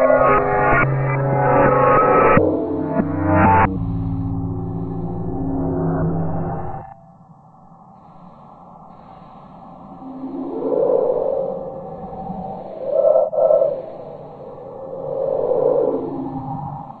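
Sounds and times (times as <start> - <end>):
low synthesized tones gliding: 0.0 - 7.0.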